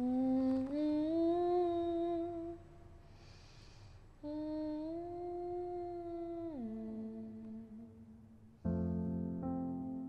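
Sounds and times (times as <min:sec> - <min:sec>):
woman humming: 0:00.0 - 0:02.6, 0:04.2 - 0:08.2.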